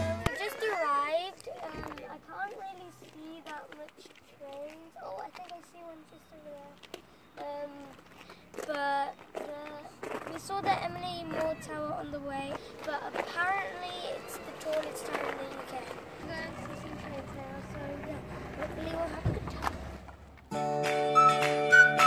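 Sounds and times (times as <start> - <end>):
faint outdoor background: 0.0 - 22.0
child talking: 0.2 - 8.0, 8.6 - 19.8.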